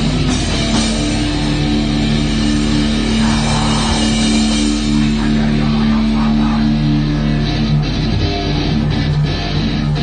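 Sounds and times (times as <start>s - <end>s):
distorted electric guitars droning: 0.0s - 10.0s
drums: 0.0s - 10.0s.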